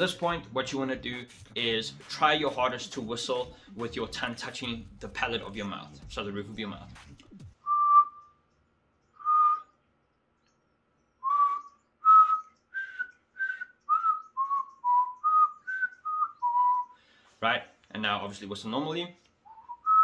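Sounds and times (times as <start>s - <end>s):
mouth whistle notes: 7.6s - 8.4s, 9.2s - 9.8s, 11.2s - 17.0s, 19.5s - 20.0s.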